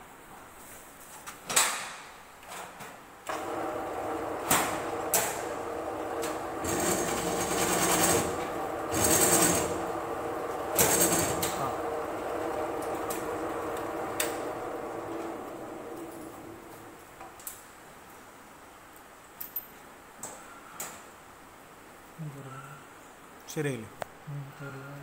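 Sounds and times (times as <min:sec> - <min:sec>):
drill press motor hum: 0:03.3 - 0:17.2.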